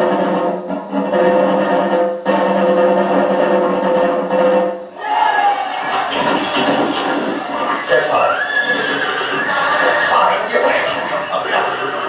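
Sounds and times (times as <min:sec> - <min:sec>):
horse whinnying over loudspeakers: 0:07.0 - 0:12.0.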